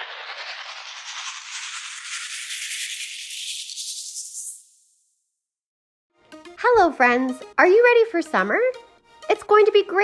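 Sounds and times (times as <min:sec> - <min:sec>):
rising whoosh with rattle: 0:00.0 - 0:05.1.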